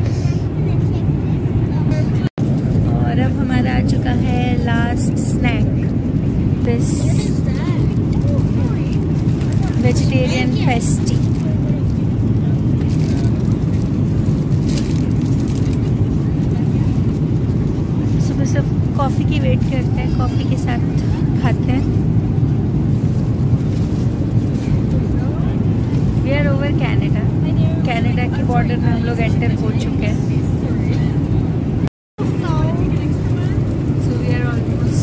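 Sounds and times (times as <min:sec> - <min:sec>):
airliner cabin drone: 0:00.0 - 0:35.0.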